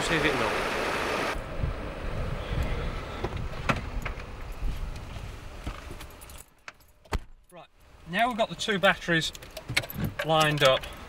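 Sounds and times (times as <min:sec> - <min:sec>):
keys jangling: 0:06.0 - 0:07.0.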